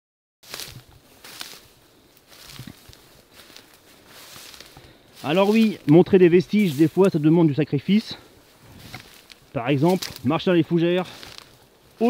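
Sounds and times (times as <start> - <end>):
dry ferns rustling and crackling: 0.4 - 12.0
footsteps: 0.4 - 12.0.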